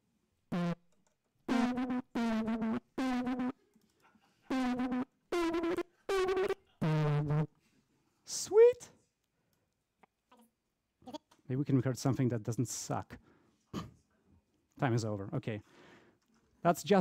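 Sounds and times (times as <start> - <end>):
sampled voice notes at different pitches: 1.5 - 3.6, 4.5 - 7.5.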